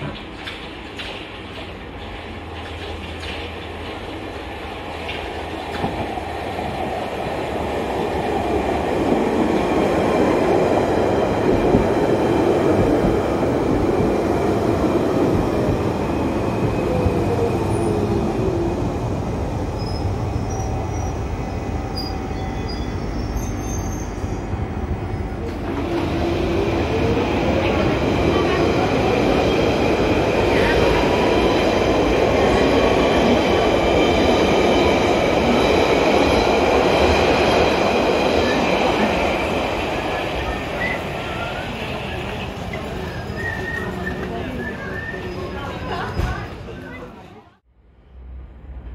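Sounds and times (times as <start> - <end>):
train wheels rumbling on track: 0.0 - 47.4.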